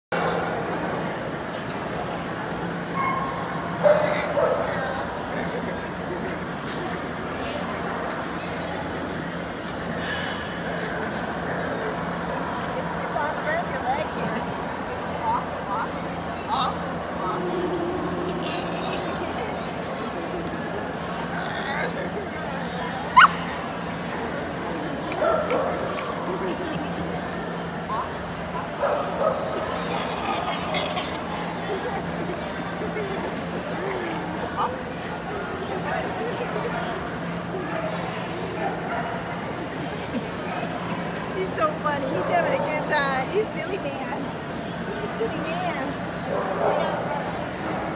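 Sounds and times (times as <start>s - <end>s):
background chatter of a hall: 0.1s - 47.9s
dog yipping: 23.2s - 23.5s.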